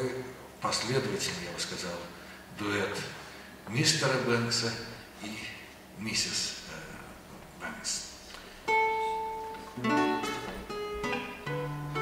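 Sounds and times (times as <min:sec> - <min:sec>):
acoustic guitar note plucked: 0:08.7 - 0:12.0.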